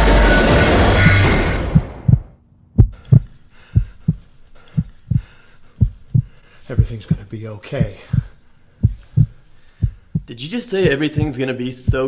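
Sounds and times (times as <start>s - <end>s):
heartbeat thumps: 1.0s - 12.0s.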